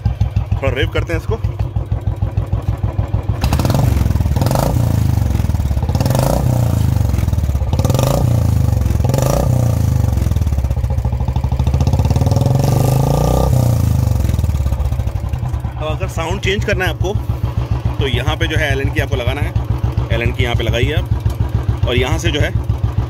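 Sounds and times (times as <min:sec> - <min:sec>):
motorcycle engine revving: 0:00.0 - 0:23.0.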